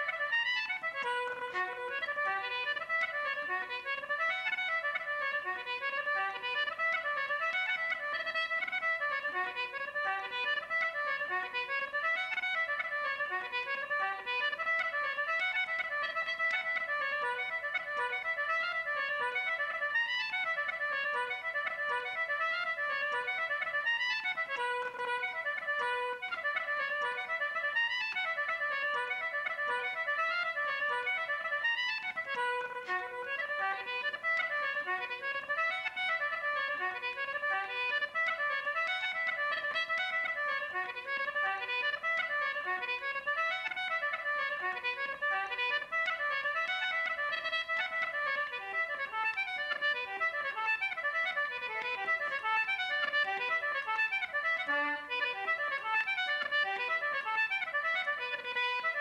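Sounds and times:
concertina playing a fast tune: 0.0 - 59.0.

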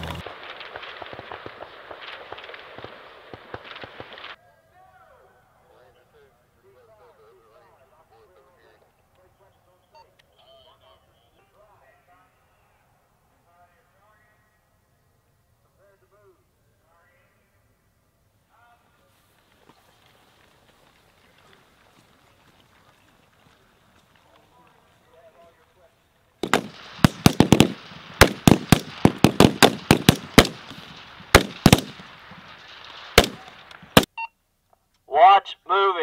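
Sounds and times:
rifle shots: 0.0 - 4.4, 26.4 - 34.1
man speaking over loudspeaker: 35.1 - 36.0.

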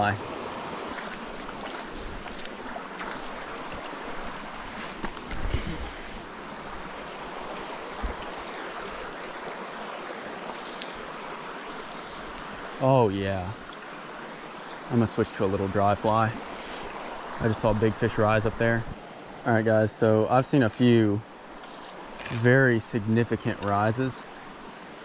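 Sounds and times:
creek water running over rocks: 0.0 - 25.0.

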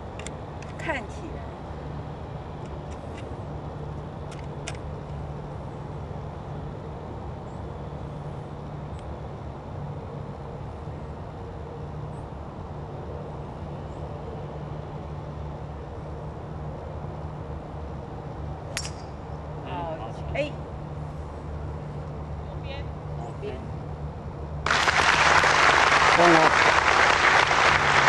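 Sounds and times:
distant road traffic rumble: 0.0 - 28.0.

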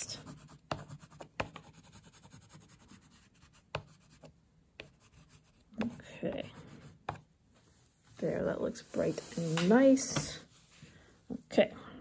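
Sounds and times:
oil pastel scratching on paper: 0.0 - 7.3.

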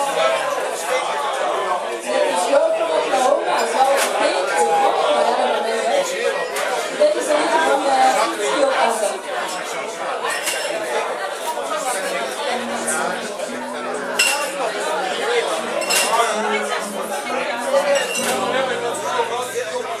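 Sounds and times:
bar crowd chattering: 0.0 - 20.0
glasses clinking: 12.6 - 19.8.

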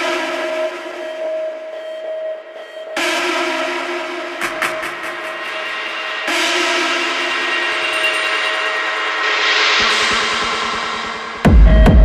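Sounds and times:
rising noise sweep: 9.2 - 11.6.

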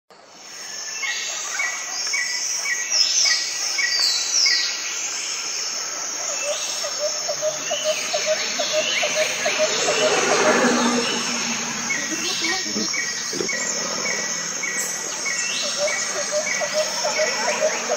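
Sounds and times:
insect trill: 0.4 - 17.9
birds chirping: 6.1 - 17.9
low bird call: 6.4 - 17.9.

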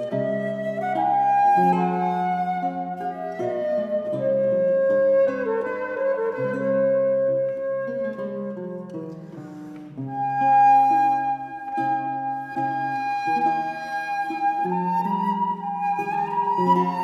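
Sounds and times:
flute melody: 0.0 - 17.0
plucked lute: 0.0 - 17.0.

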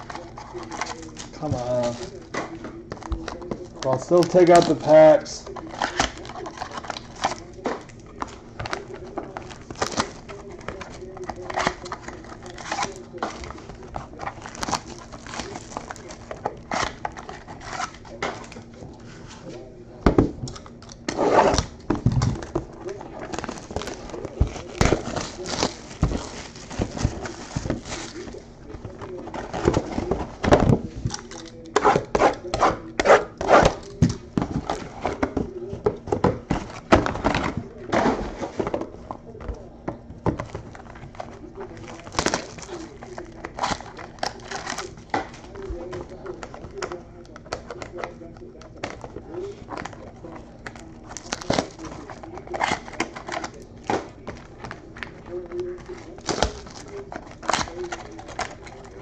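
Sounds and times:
foil wrappers tearing and crinkling: 0.0 - 18.7, 20.5 - 38.6, 40.4 - 59.0
trading cards being handled: 0.0 - 19.8, 20.5 - 59.0.

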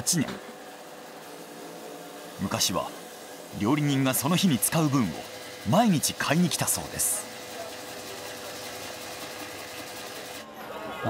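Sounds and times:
shaving machine whirring: 0.0 - 11.0.

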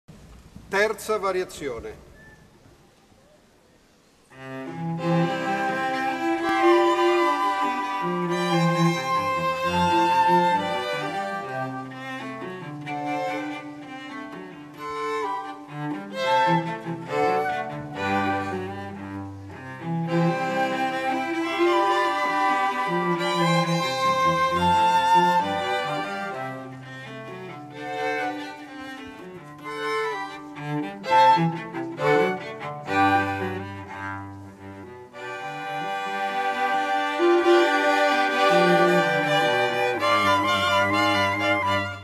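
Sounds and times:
violins playing: 4.3 - 42.0
cello bass line: 4.4 - 42.0.

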